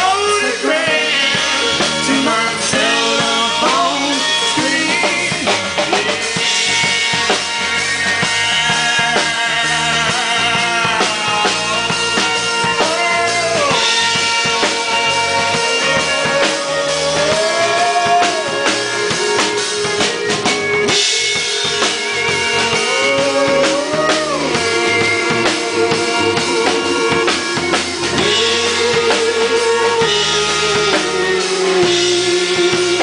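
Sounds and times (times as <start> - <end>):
drum kit: 0.0 - 33.0
guitar: 0.0 - 33.0
melodica: 0.0 - 33.0.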